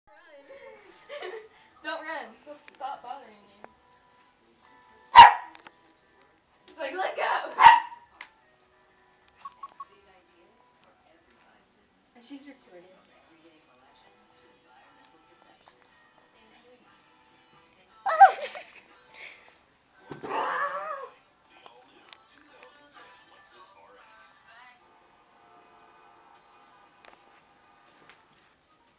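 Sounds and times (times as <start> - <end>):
small dog barking: 5.2 - 5.5, 7.5 - 8.0.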